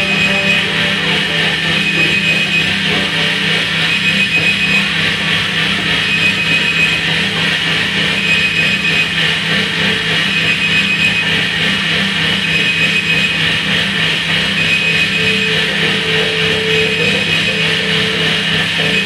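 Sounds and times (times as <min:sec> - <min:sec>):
held mid-pitched tone: 0:00.0 - 0:04.9
thin high tone: 0:00.0 - 0:05.0
dense electronic drone: 0:00.0 - 0:19.0
steady low hum: 0:00.0 - 0:19.0.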